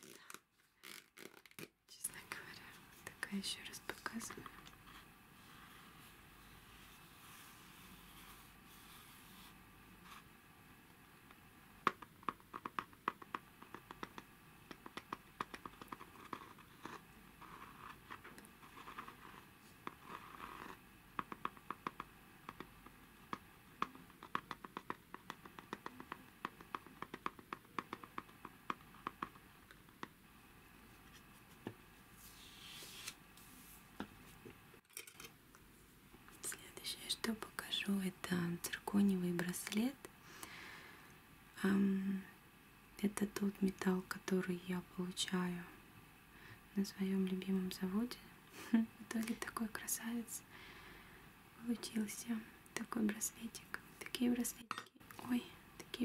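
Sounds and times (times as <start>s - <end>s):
soft rubbing: 2.2s - 10.4s, 15.6s - 21.7s, 30.8s - 34.5s.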